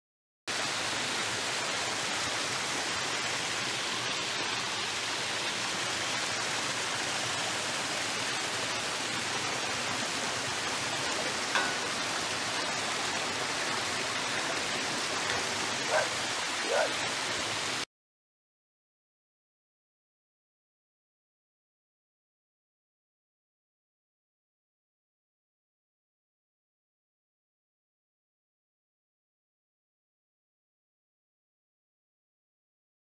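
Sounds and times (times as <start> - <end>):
water splashing down rock: 10.5 - 17.8.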